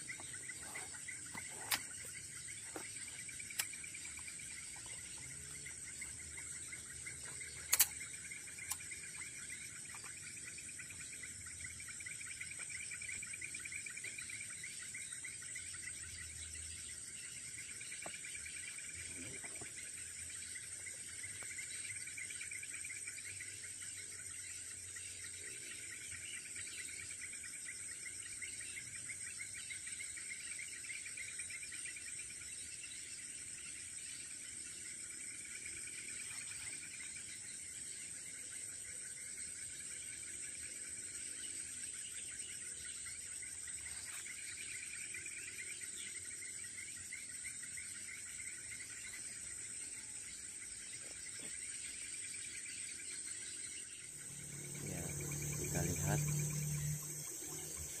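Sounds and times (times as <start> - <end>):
high insect whine: 0.0 - 58.0
pulsing insect trill: 0.0 - 58.0.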